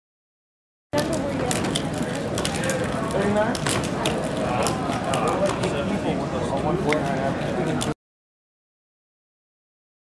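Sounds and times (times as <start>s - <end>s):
chatter of many voices: 1.0s - 8.0s.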